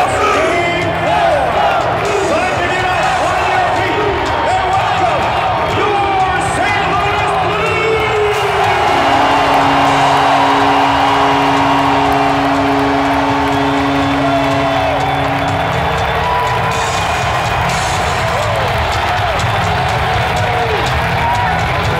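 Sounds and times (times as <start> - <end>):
crowd cheering: 0.0 - 21.9
loud arena music: 0.0 - 21.9.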